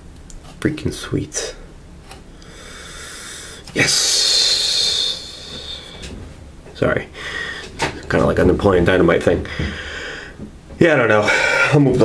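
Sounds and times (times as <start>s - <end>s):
man exclaiming with hiss: 3.8s - 6.0s.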